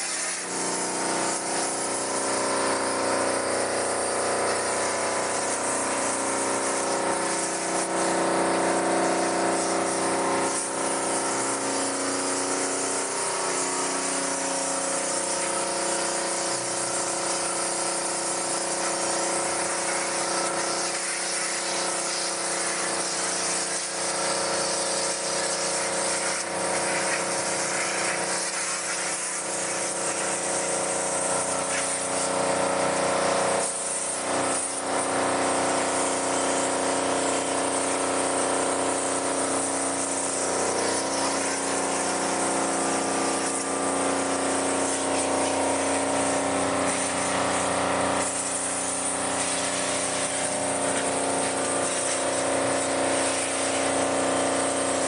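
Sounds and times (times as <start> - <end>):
water jet hissing: 0.0 - 55.0
water pump humming: 0.0 - 55.0.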